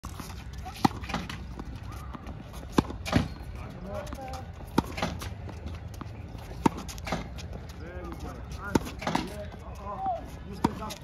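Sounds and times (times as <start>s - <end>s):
tennis racket hitting ball: 0.6s - 3.4s, 4.1s - 5.4s, 6.6s - 7.4s, 8.7s - 9.4s.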